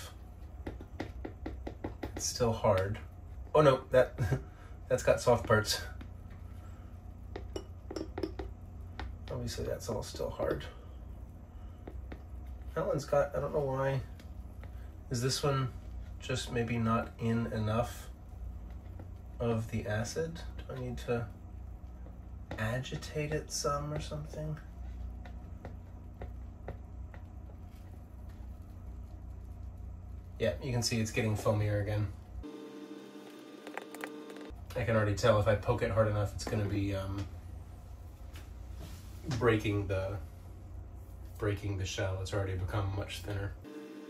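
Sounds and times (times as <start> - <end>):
steady low hum: 0.0 - 44.0
plastic rod tapping glass: 7.3 - 8.6.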